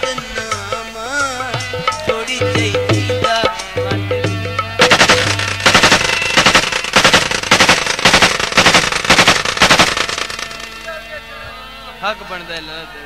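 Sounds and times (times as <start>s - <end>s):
hand-drum beats: 0.0s - 10.2s
folk melody: 0.0s - 13.0s.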